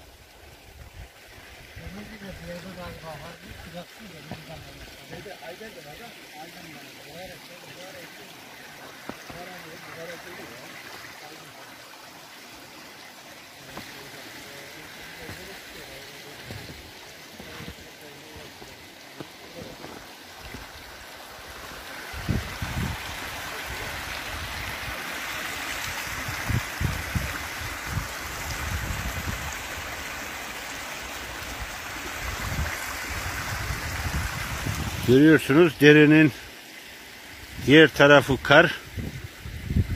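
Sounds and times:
water running over rocks: 0.0 - 39.9.

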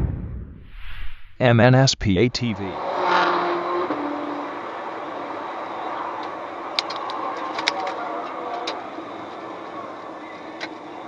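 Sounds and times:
road and wind noise: 2.2 - 11.0
sports car engine passing: 2.4 - 11.0.

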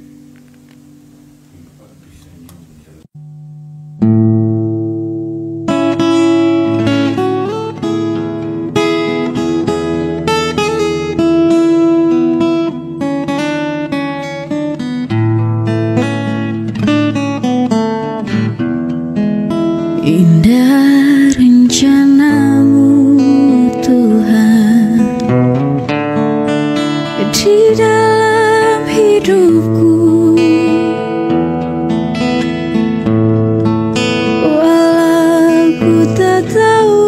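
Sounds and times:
acoustic guitar playing: 0.0 - 37.0.

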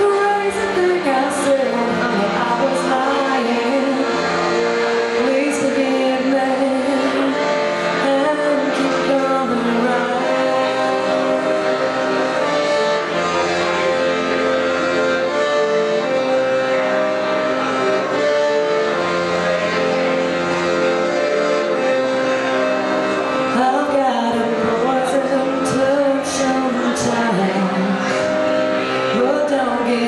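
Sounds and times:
piano accordion playing: 0.0 - 30.0.

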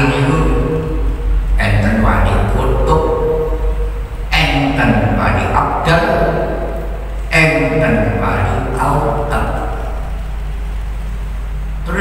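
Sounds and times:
man chanting through microphone: 0.0 - 10.2
low electrical hum: 0.0 - 12.0.

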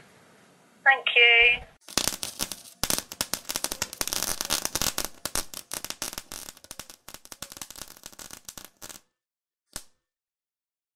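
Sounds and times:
dense irregular crackling: 1.8 - 8.8.

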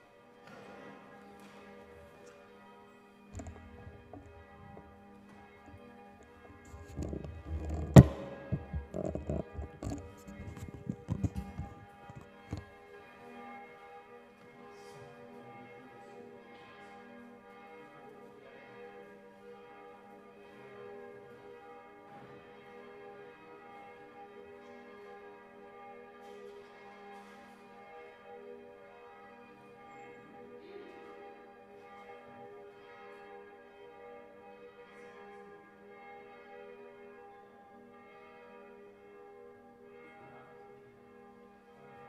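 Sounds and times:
faint church bells ringing: 0.0 - 42.0.

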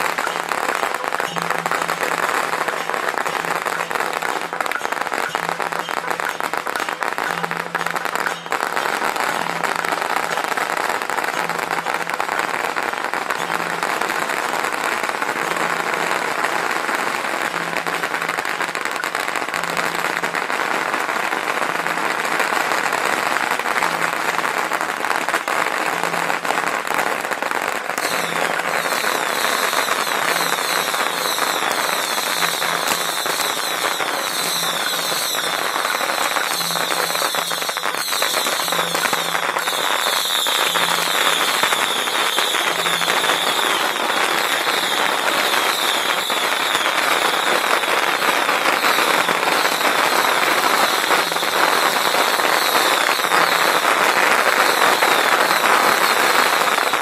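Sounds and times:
firecrackers crackling: 0.0 - 57.0
high sizzling: 0.0 - 57.0.

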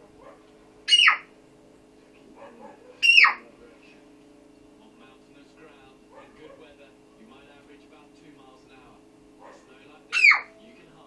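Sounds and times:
faint steady hum: 0.0 - 11.0
animal cries falling in pitch: 0.9 - 1.3.

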